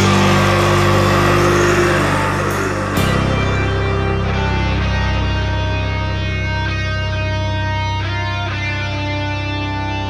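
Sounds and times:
doom metal distorted guitars: 0.0s - 10.0s.

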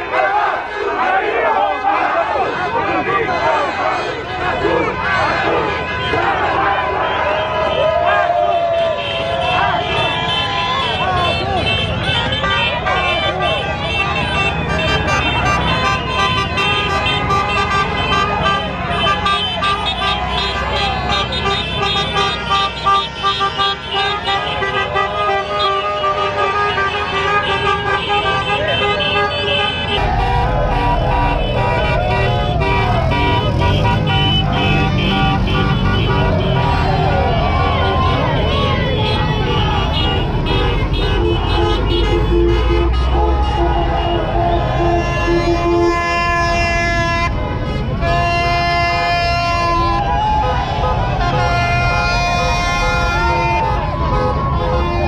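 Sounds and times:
car horns honking: 0.0s - 55.0s
crowd shouting and cheering: 0.0s - 55.0s
vehicles running: 0.0s - 55.0s.

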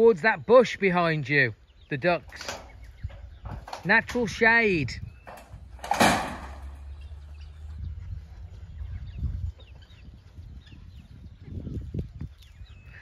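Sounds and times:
poultry chirping and calling: 0.0s - 13.0s
wind rumbling on microphone: 1.6s - 13.0s
sudden clatter: 5.2s - 6.8s.

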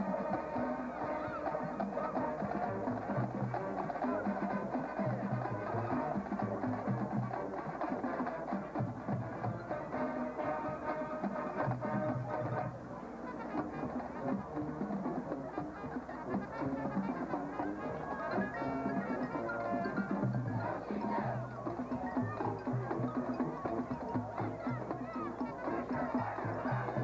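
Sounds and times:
brass chords: 0.0s - 22.0s.

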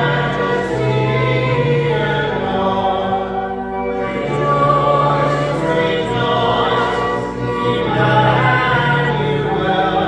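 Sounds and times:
choir singing sacred music: 0.0s - 10.0s.

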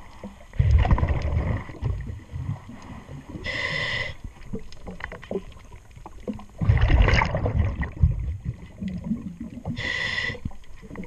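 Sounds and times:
exhaled bubbles rushing: 0.5s - 3.4s, 4.4s - 9.8s
scuba regulator inhalation hiss: 3.4s - 4.3s, 9.8s - 10.6s.

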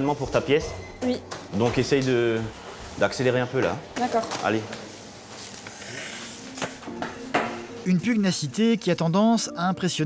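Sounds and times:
kitchen room noise: 0.0s - 8.9s.

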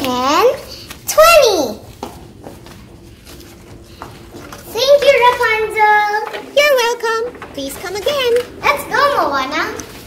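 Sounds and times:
paper rustling: 1.9s - 10.0s.

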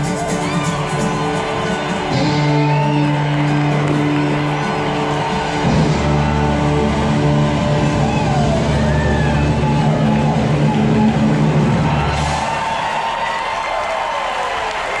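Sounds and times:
audience applause: 0.0s - 15.0s
audience cheering and whooping: 0.0s - 15.0s
rock music held chord: 2.0s - 11.9s.

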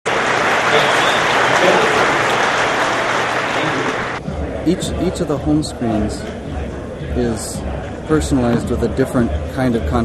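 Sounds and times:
large audience applauding: 0.1s - 4.2s.

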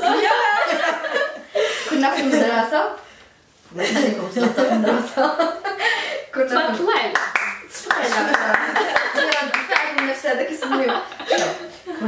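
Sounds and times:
women talking: 1.9s - 3.0s, 6.3s - 11.6s
hand claps: 7.0s - 10.2s.

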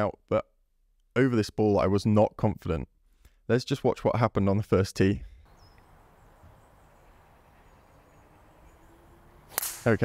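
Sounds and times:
faint open-air background: 0.0s - 10.0s
golf club striking ball: 9.4s - 10.0s.

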